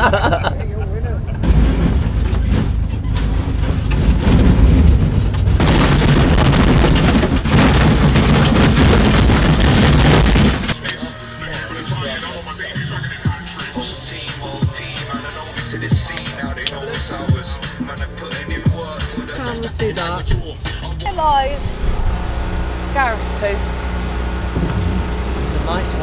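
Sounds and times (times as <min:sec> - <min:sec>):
engine low rumble: 0:00.0 - 0:16.2, 0:18.8 - 0:26.0
background music: 0:10.6 - 0:26.0
voices: 0:10.7 - 0:23.9, 0:25.4 - 0:26.0.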